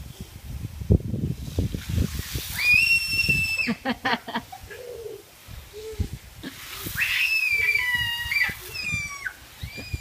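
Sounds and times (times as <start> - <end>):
children squealing: 2.5 - 3.8, 6.8 - 10.0.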